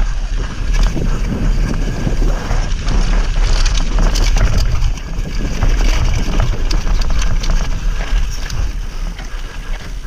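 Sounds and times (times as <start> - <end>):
bike rattling: 0.0 - 10.0
tyres rolling over gravel: 0.0 - 10.0
wind buffeting microphone: 0.0 - 10.0.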